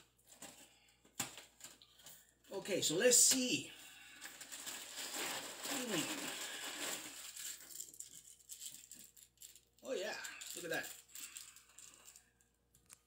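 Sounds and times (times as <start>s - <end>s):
foil packet crinkling: 3.3s - 13.0s
cereal rattling in a box: 4.2s - 12.3s.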